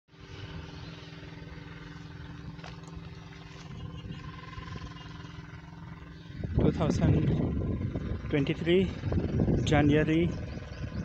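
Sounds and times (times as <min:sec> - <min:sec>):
electric pump humming: 0:00.1 - 0:11.0.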